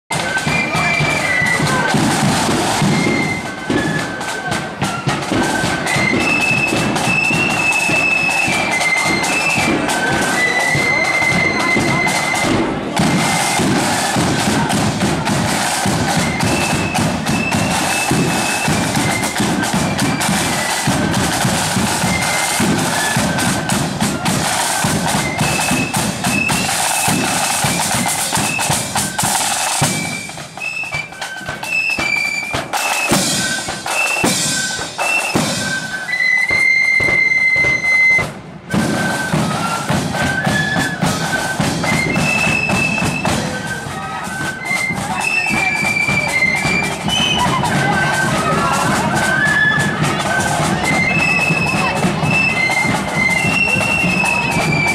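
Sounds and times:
flutes piping a melody: 0.1s - 54.9s
side drums beating: 0.1s - 54.9s.

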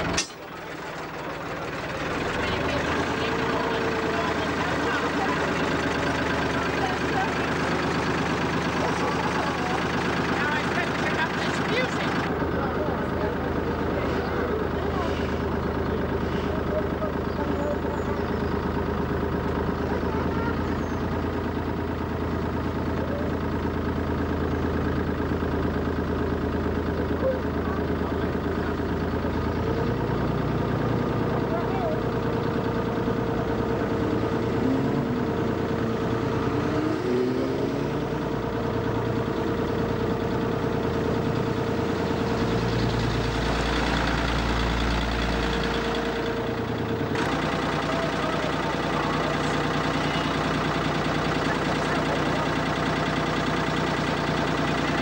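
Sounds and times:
boat engine running: 0.0s - 55.0s.

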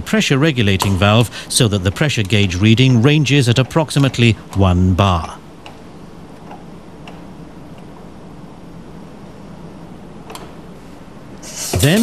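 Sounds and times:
steady air hiss: 0.8s - 1.7s, 10.7s - 12.0s.

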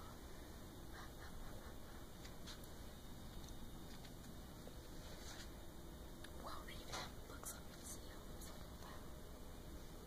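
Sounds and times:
low steady background noise: 0.0s - 10.0s
person whispering: 6.4s - 9.2s.

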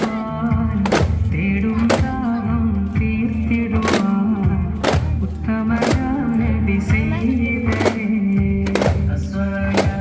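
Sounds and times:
sharp drum strikes: 0.0s - 2.3s, 5.8s - 6.2s, 7.6s - 10.0s.

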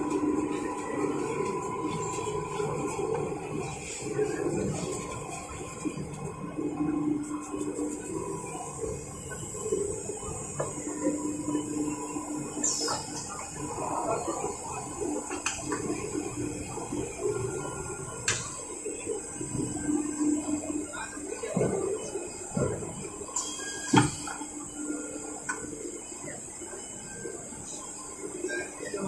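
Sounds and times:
low machine hum: 0.0s - 29.0s.

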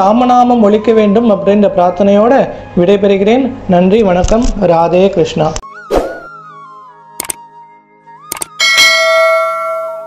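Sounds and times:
mouse double click: 7.2s - 7.4s, 8.3s - 8.6s
bright bell chime: 8.6s - 10.0s.

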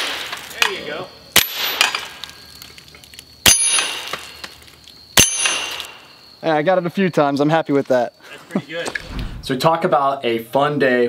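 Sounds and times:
pistol shots: 1.4s - 2.1s
steel target ringing: 3.5s - 4.3s, 5.2s - 6.1s.

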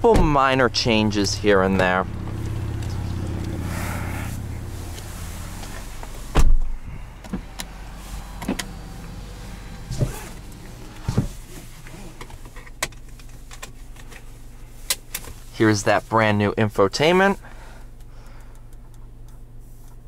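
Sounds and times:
steady low hum: 0.5s - 16.7s
heavy thump of sitting in car: 1.7s - 12.5s.

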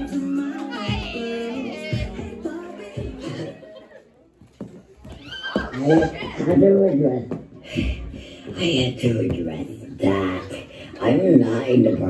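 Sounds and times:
music: 0.0s - 5.2s.

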